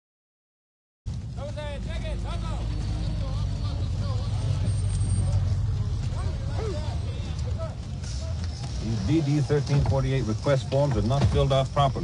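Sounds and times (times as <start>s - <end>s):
bus engines idling: 1.1s - 12.0s
crowd chatter: 1.3s - 12.0s.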